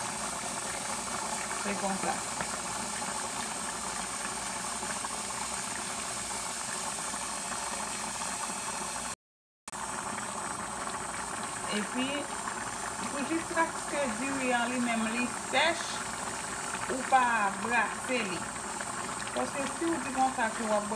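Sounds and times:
pot boiling and bubbling: 0.0 - 20.9.

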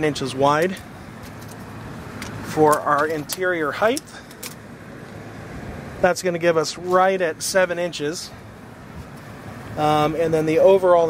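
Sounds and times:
air-conditioner hum: 0.0 - 11.0
road traffic: 0.0 - 11.0.

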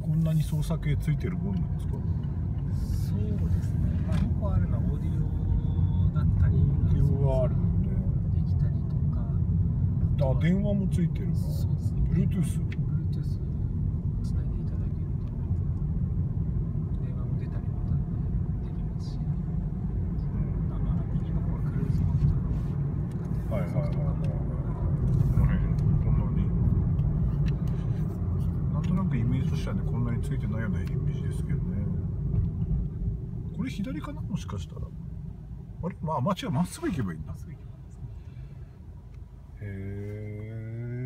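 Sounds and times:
car engine and road noise: 0.0 - 41.0.

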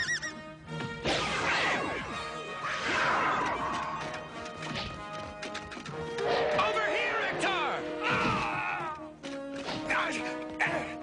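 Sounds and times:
cartoon action music: 0.0 - 5.4, 6.0 - 11.0.

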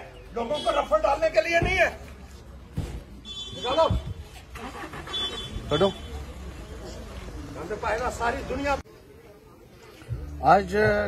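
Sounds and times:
men talking: 0.0 - 2.1, 7.4 - 8.9, 10.1 - 11.0.

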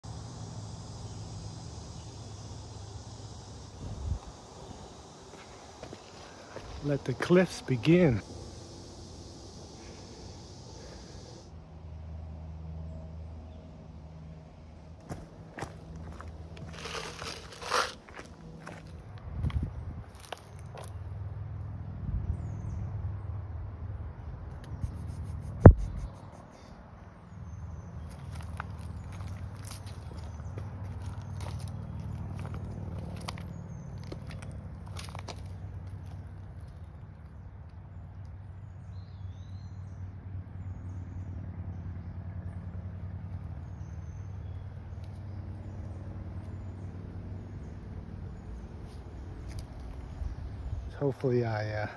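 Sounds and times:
footsteps crunching dry leaves: 5.3 - 8.2, 15.0 - 21.1, 27.9 - 37.2
rustles and clicks: 15.0 - 18.9
sharp loud knock: 25.6 - 26.0.

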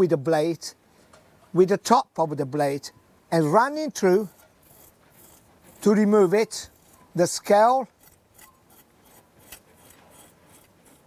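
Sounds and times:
knife scraping fish scales: 3.9 - 11.0.

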